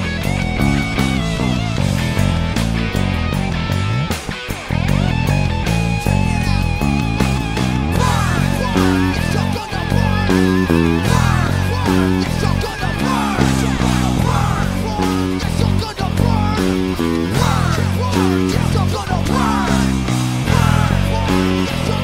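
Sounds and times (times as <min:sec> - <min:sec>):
electric bass playing rock riff: 0:00.0 - 0:22.0
electric guitar bending pitch: 0:00.0 - 0:22.0.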